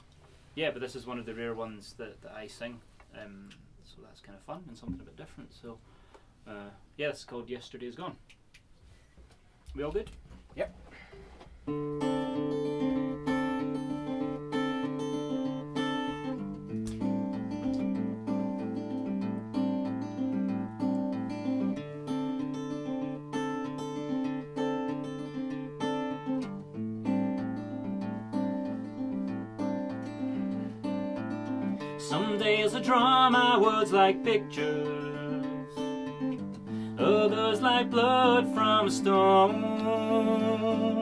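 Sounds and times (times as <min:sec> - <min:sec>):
acoustic guitar strumming: 0:11.5 - 0:41.0
resonator guitar: 0:11.5 - 0:41.0.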